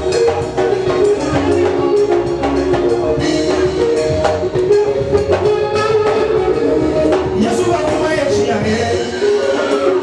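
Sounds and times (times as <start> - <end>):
gospel band playing instrumental: 0.0 - 10.0
steady drum beat: 0.0 - 10.0.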